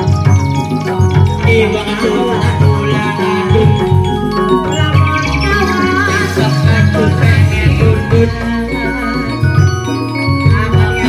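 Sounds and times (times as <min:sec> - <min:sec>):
drums: 0:00.0 - 0:11.0
metallophones: 0:00.0 - 0:11.0
wavering high melodic line: 0:00.0 - 0:11.0.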